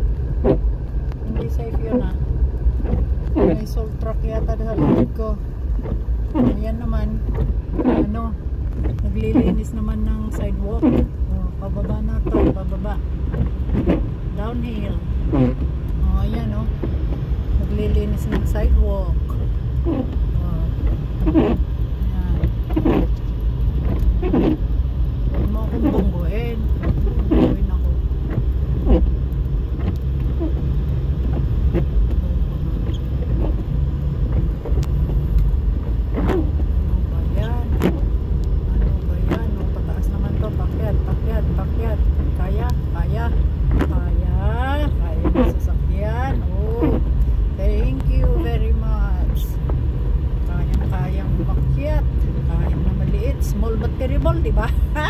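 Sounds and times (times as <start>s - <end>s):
car engine and tyres rumbling: 0.0s - 55.0s
person speaking: 50.5s - 55.0s.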